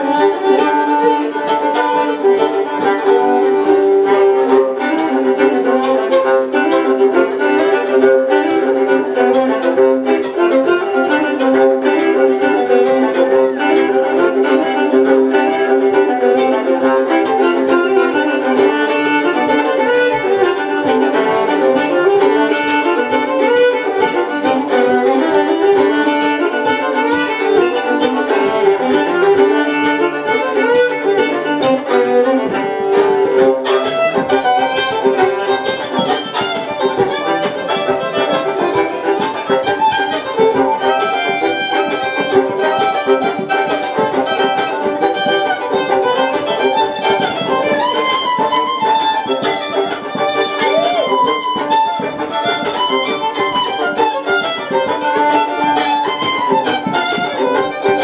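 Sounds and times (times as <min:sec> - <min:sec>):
two fiddles playing folk tune: 0:00.0 - 0:58.0.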